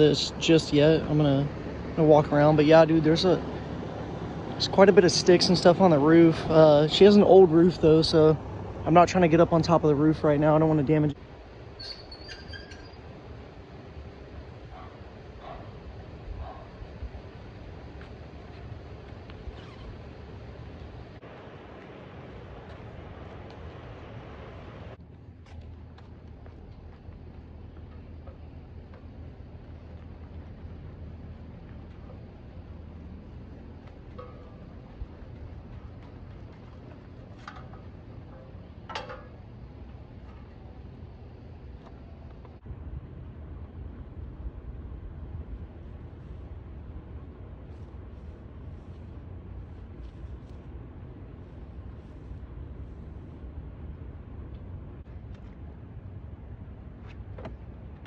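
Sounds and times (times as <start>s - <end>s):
faint low rumble: 12.9s - 58.0s.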